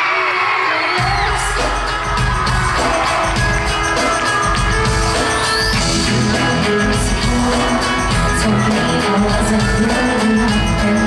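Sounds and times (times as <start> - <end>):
crowd screaming: 0.0 - 11.0
live pop band music: 0.0 - 11.0
steady drum beat: 1.0 - 11.0.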